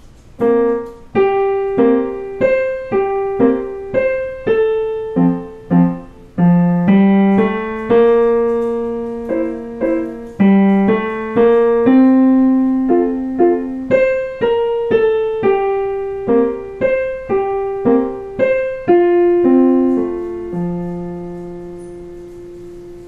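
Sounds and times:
digital piano waltz: 0.0 - 23.0.

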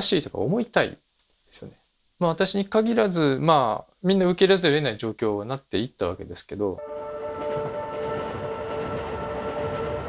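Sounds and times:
train whine: 6.8 - 10.0
train wheels rumbling on rails: 7.4 - 10.0.

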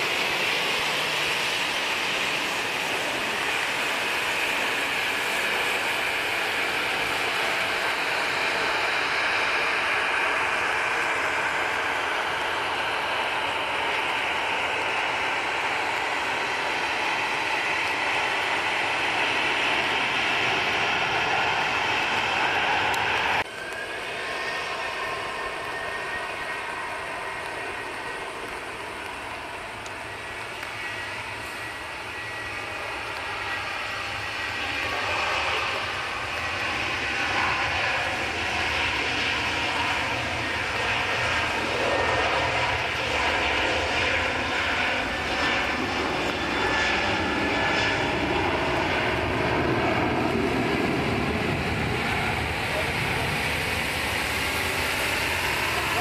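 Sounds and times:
jet engines with whining tones: 0.0 - 56.0.

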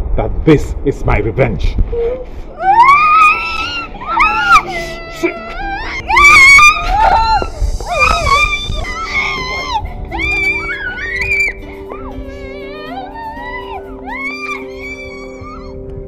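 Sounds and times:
background music with low note: 0.0 - 16.0
girl wailing and crying: 2.0 - 16.0.

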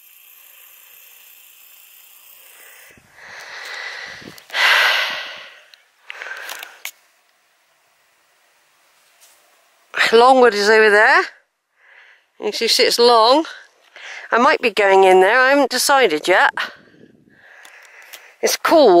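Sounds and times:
faint steady hiss: 0.0 - 19.0
person breathing heavily: 2.5 - 6.8, 11.7 - 12.3, 13.9 - 14.3, 16.6 - 18.4.

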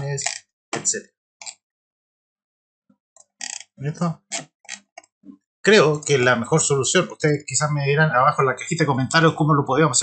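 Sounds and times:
man speaking: 0.0 - 1.1, 3.8 - 4.4, 5.6 - 10.0.

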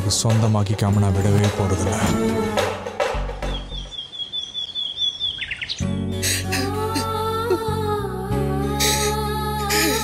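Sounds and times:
soft background music: 0.0 - 10.0
songbird whistling and chirping: 3.4 - 6.7.

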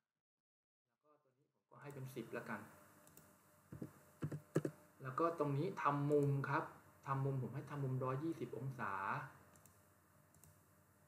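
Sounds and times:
computer mouse clicks: 3.0 - 4.8, 9.5 - 10.6.

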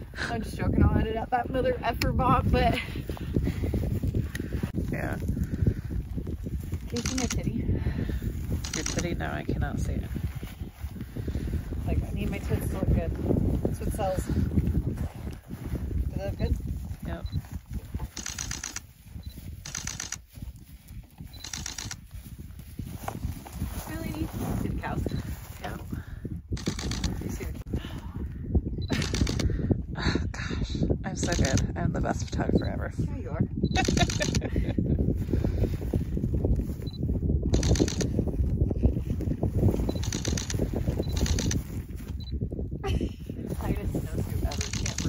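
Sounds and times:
wind buffeting microphone: 0.0 - 45.0
camera shutter clicking: 8.6 - 9.0, 18.2 - 18.8, 19.6 - 20.2, 26.6 - 27.1, 28.9 - 29.4, 33.8 - 34.4, 37.6 - 38.1, 40.0 - 40.6, 41.2 - 41.6, 44.5 - 45.0.

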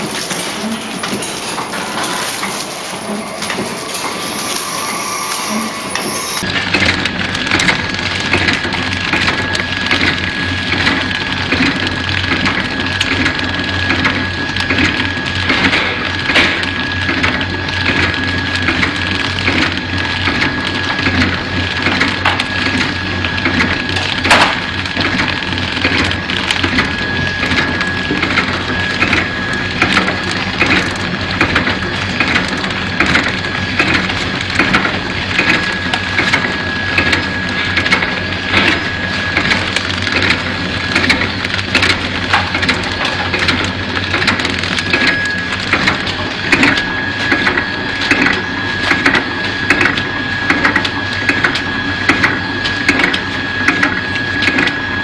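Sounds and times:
steady machine hum: 0.0 - 55.0
wrapping machine clattering: 0.0 - 55.0
thin high whine: 1.0 - 6.4.

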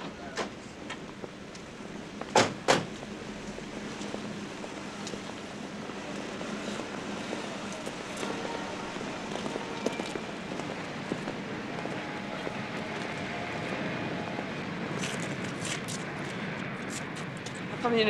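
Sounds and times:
street ambience: 0.0 - 18.0.

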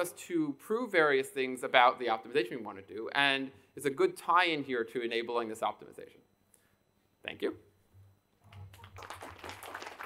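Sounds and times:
audience applauding: 8.5 - 10.0.

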